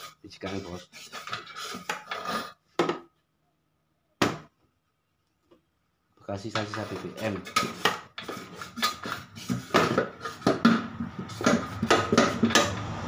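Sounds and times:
man talking: 0.2s - 0.9s, 6.2s - 7.6s.

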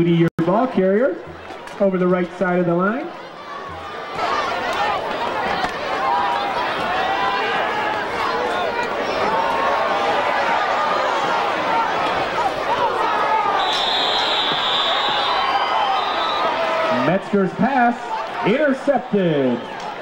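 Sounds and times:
football crowd yelling and cheering: 0.0s - 20.0s
whistle blowing: 13.6s - 16.6s.

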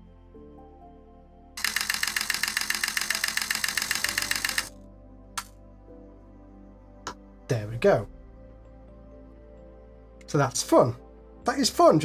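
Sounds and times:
background music: 0.0s - 12.0s
camera shutter clicks: 1.6s - 4.7s.

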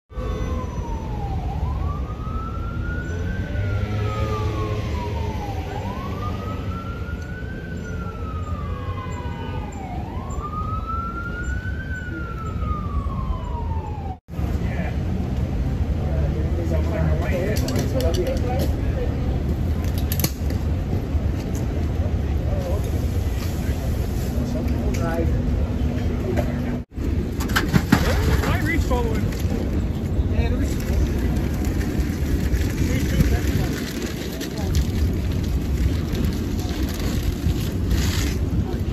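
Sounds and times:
emergency siren wailing: 0.1s - 14.3s
street traffic rumble: 0.1s - 38.9s.

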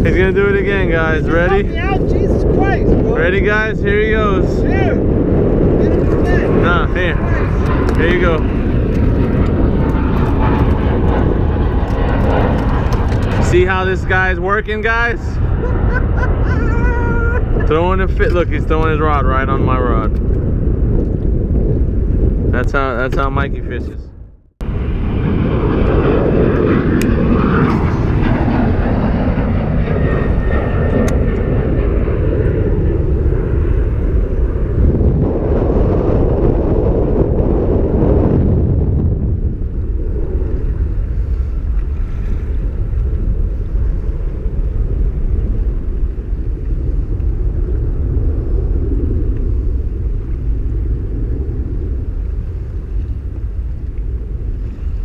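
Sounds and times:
jet airliner passing overhead: 0.0s - 55.0s
wind buffeting microphone: 0.0s - 55.0s.

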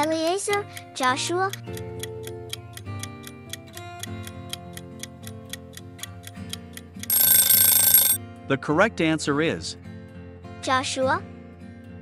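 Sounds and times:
soft background music: 0.0s - 6.6s.

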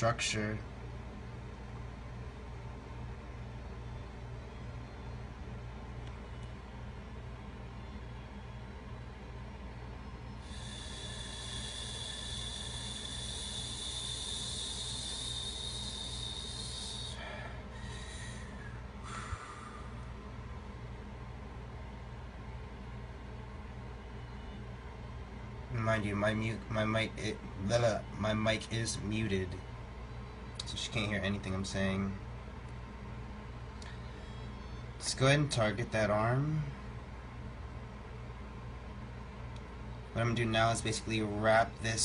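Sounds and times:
steady low hum: 0.0s - 42.0s
high hiss: 10.4s - 20.0s
short hisses: 10.4s - 20.0s.

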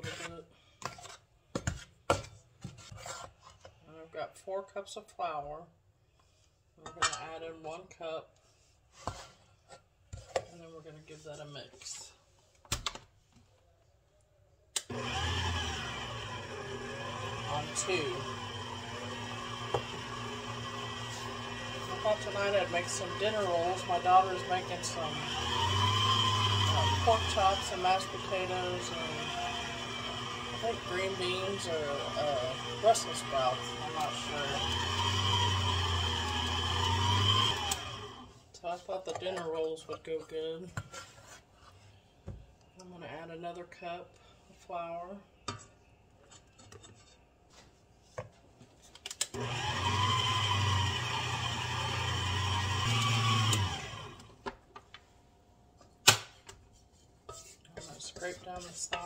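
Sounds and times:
stand mixer running: 14.9s - 38.3s, 49.4s - 54.3s
faint handling sounds: 54.8s - 59.0s.

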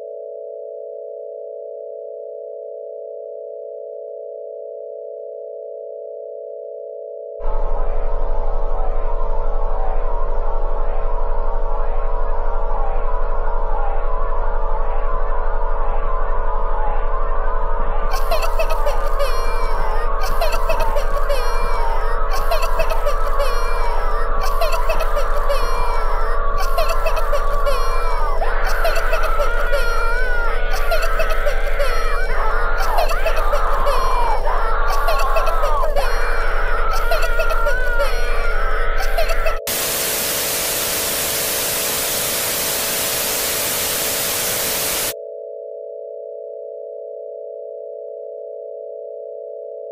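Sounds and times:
television static hiss: 18.1s - 32.2s, 32.8s - 36.3s, 39.0s - 45.2s.

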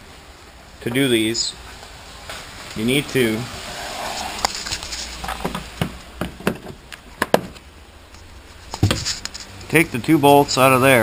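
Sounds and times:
light taps and knocks: 8.7s - 9.3s.

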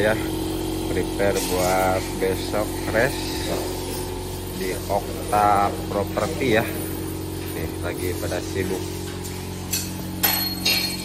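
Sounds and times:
steady low hum: 0.0s - 11.0s
metal tools clinking on metal: 9.1s - 11.0s.

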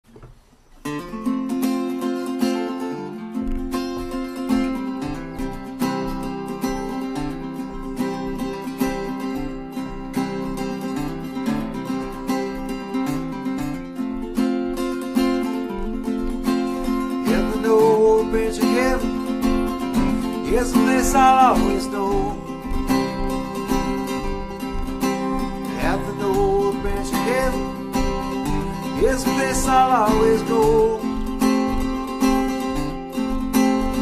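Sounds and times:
acoustic guitar playing: 0.0s - 34.0s.

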